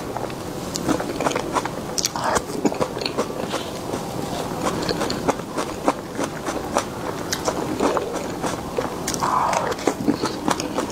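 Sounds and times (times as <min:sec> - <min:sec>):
person eating with wet smacking: 0:00.1 - 0:10.9.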